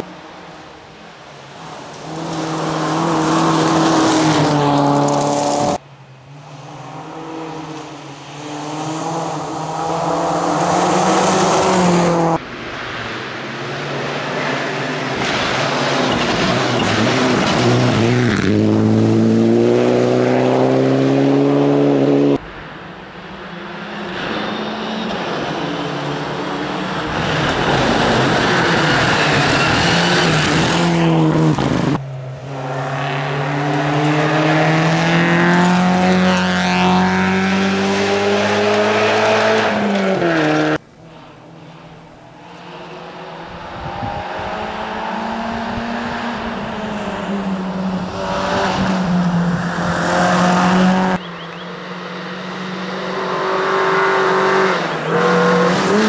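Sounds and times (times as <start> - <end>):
rally car engines revving: 0.0 - 5.8, 6.4 - 56.0.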